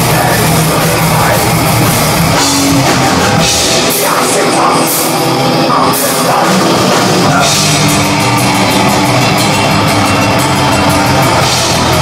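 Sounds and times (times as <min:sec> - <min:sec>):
electric guitars: 0:00.0 - 0:12.0
fast drumming on drum kit: 0:00.0 - 0:12.0.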